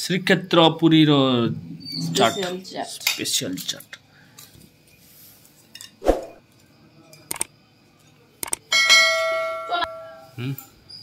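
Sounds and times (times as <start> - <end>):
quick clicks: 7.3 - 7.5, 8.4 - 8.6.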